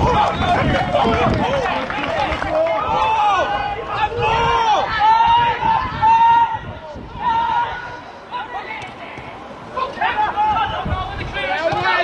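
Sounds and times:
outdoor background noise: 0.0 - 12.0
voices shouting and calling: 0.0 - 12.0.

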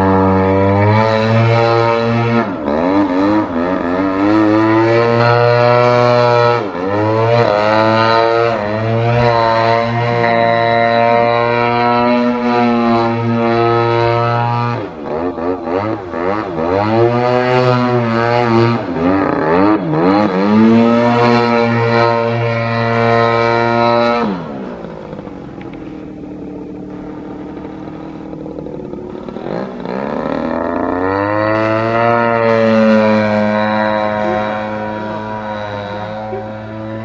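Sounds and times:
model plane engine: 0.0 - 37.0.

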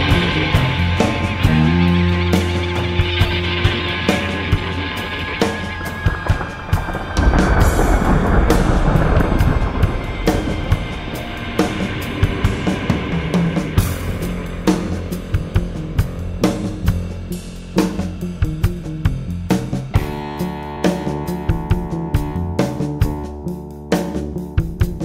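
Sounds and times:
instrumental rock music: 0.0 - 25.0.

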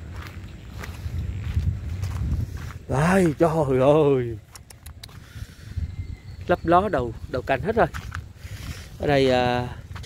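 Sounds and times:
footsteps on soil: 0.0 - 10.0.

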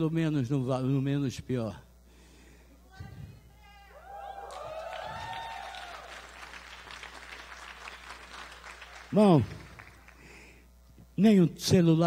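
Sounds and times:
voices cheering: 3.9 - 8.3
audience applauding: 4.3 - 10.3.

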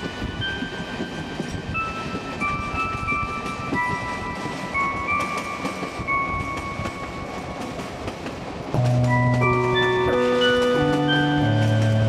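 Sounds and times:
train rumble with wheel clicks: 0.0 - 12.0
faint held music notes: 8.8 - 12.0
mallet percussion music: 8.8 - 12.0.

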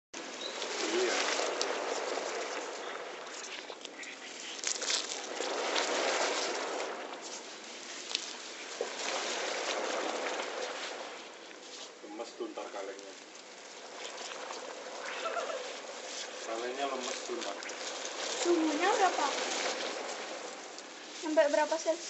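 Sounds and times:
fizzing hiss with crackles: 0.2 - 22.0.

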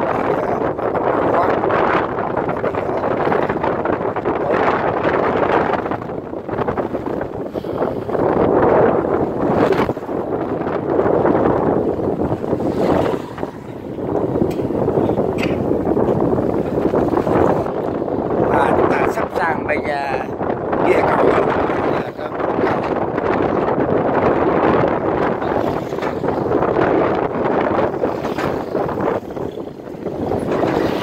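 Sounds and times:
motorbikes on steel bridge deck: 0.0 - 31.0
wind buffeting microphone: 0.0 - 31.0.

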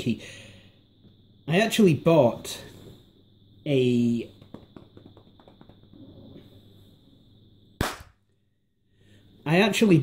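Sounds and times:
faint high whine: 0.0 - 10.0
sharp knock: 7.8 - 8.2.

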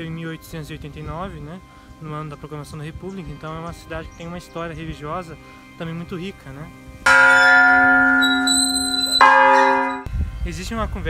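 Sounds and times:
church bell ringing: 7.0 - 10.1.

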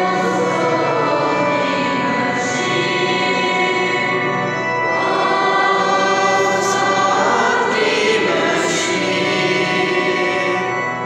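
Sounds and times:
choir singing a hymn: 0.0 - 11.0
sustained accompanying chords: 0.0 - 11.0.

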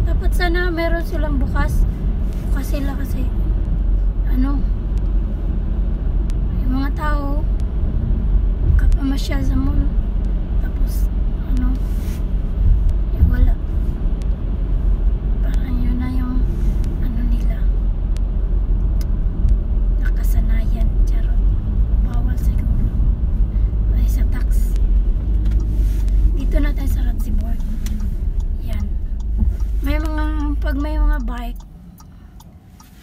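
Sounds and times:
car engine rumble: 0.0 - 33.0
road noise inside car: 0.0 - 33.0.

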